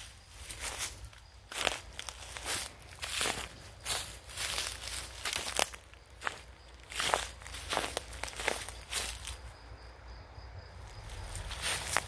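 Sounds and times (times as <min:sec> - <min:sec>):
footsteps on grass and leaves: 0:00.0 - 0:09.6, 0:10.8 - 0:12.0.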